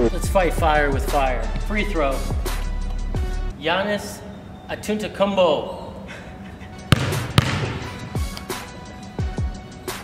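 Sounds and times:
background music: 0.0 - 10.0
basketball bouncing on wooden floor: 6.9 - 7.9.

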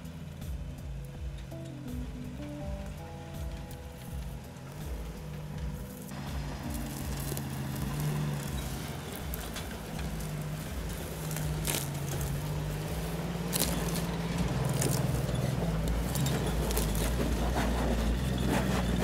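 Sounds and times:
brush crackling under tyres: 0.0 - 19.0
engine running under load: 0.0 - 19.0.

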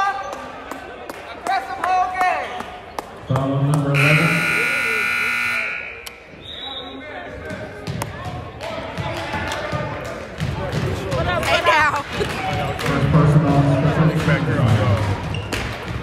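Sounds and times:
crowd chatter: 0.0 - 16.0
scoreboard buzzer horn: 4.0 - 6.1.

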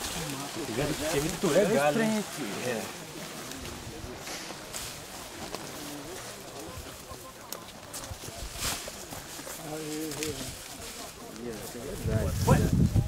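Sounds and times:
footsteps on dirt: 0.0 - 12.8
bush leaves rustling: 0.0 - 13.0
faint voices: 0.0 - 13.0.

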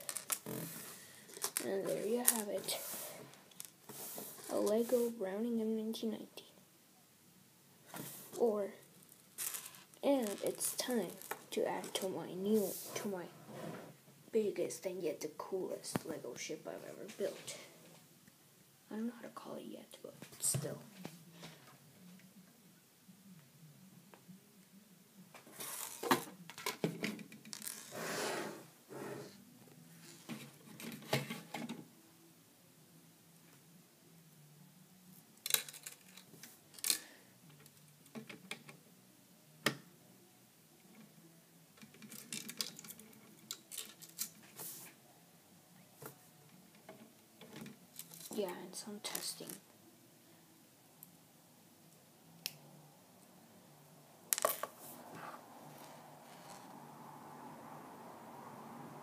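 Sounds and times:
plastic toy bricks clicking and rattling: 0.0 - 0.4, 35.4 - 37.0, 41.8 - 44.4
faint low hum: 0.0 - 27.6, 28.5 - 59.0.

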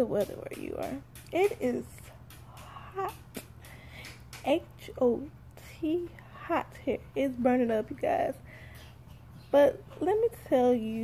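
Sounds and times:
woman speaking: 0.0 - 3.4, 4.4 - 8.6, 9.5 - 11.0.

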